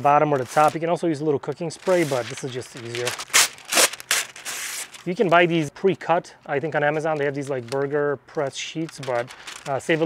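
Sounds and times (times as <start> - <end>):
paper tearing and rustling: 0.3 - 0.9, 1.6 - 5.6, 8.8 - 10.0.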